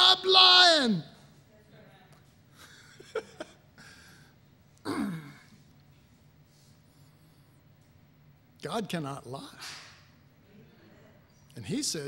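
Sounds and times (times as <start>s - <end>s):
man laughing breathily: 2.6s - 4.3s.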